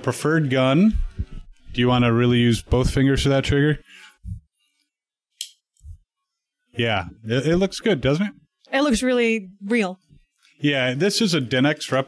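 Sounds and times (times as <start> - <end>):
low bumps: 0.9 - 3.1.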